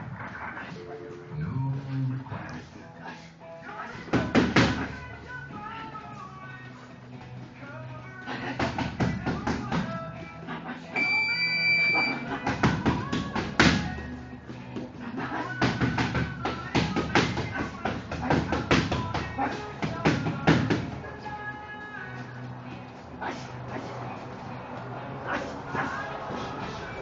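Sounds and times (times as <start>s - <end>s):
background music: 0.0s - 27.0s
gloved punches smacking mitts: 4.0s - 5.0s, 8.5s - 10.0s, 12.3s - 14.1s, 14.8s - 21.0s.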